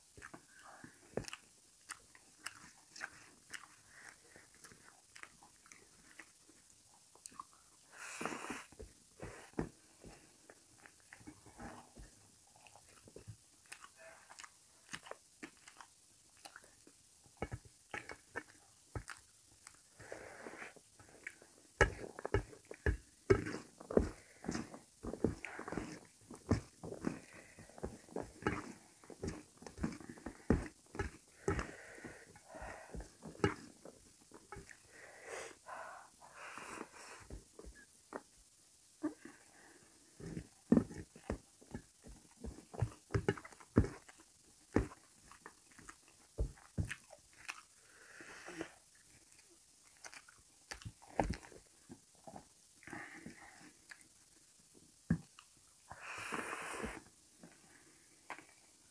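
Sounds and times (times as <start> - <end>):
chewing and wet mouth smacks: 0.2 - 7.6, 12.6 - 19.8, 48.9 - 51.5.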